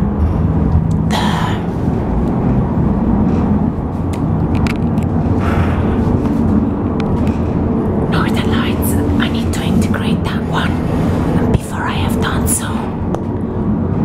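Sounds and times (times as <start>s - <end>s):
cable car cabin rumble: 0.0s - 14.0s.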